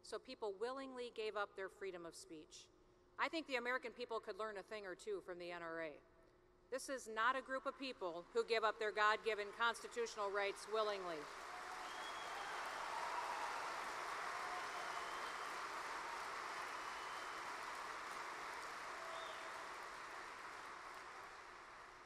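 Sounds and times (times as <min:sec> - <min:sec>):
audience applauding: 0:09.2 - 0:22.0.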